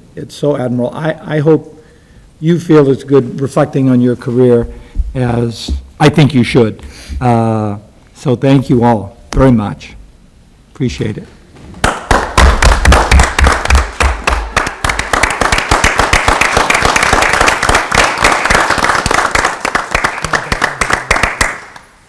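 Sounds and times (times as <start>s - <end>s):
people clapping: 11.8s - 22.0s.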